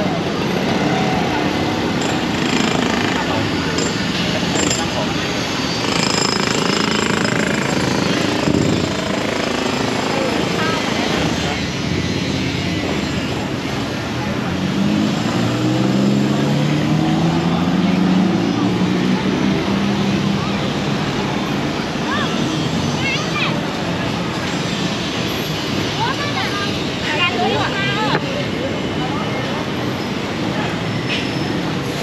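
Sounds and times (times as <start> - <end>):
city road traffic: 0.0 - 32.0.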